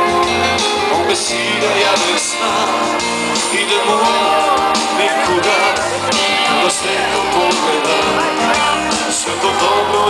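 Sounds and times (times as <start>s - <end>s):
man singing: 0.0s - 10.0s
pop-rock band playing: 0.0s - 10.0s.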